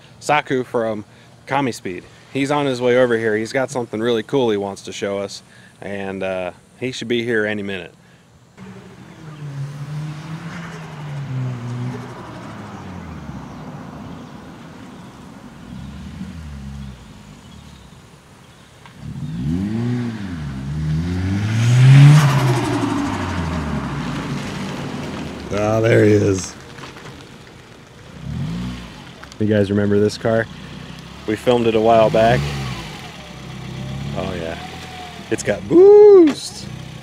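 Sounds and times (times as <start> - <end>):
car engine revving: 8.6 - 17.9, 18.8 - 37.0.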